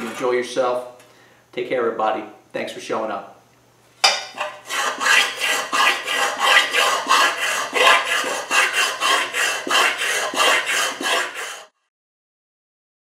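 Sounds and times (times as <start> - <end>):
file rasping on sheet steel: 4.4 - 11.8.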